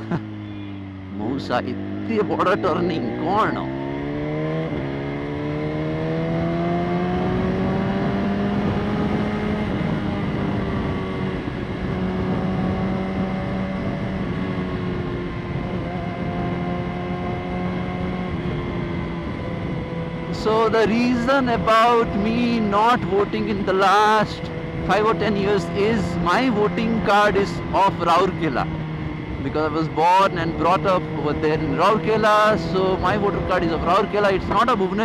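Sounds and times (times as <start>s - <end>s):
wind and road noise: 0.0s - 35.0s.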